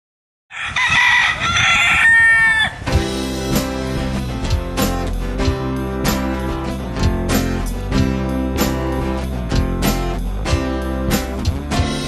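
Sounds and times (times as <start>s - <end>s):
rooster crowing: 0.5s - 2.9s
guitar music: 2.9s - 12.0s.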